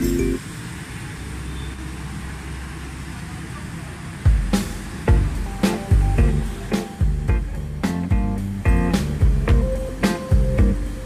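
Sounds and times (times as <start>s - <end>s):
vehicles passing on wet roads: 0.0s - 10.0s.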